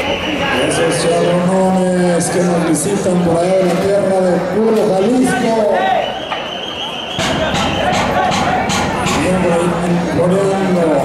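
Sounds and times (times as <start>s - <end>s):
crowd voices: 0.0s - 11.0s
music with a regular beat: 7.2s - 9.4s.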